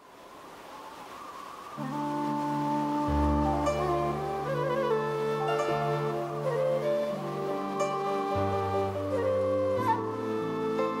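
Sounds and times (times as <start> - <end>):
instrumental ballad intro: 1.8 - 11.0.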